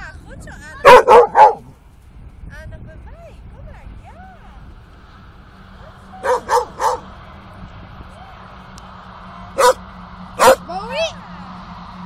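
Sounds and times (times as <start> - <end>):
dog barking: 0.8 - 1.7, 6.2 - 7.1, 9.6 - 9.8, 10.4 - 10.6.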